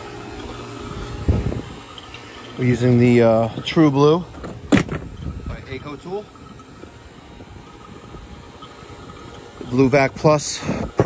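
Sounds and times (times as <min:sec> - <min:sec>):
vacuum pump running: 0:00.0 - 0:11.0.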